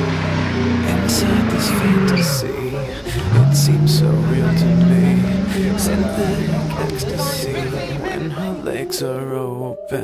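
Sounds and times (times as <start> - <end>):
car engine revving high: 0.0 - 8.8.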